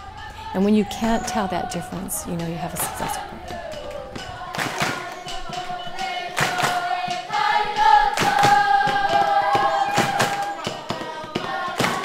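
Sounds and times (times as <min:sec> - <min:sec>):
children singing: 0:00.0 - 0:12.0
hand claps: 0:02.8 - 0:12.0.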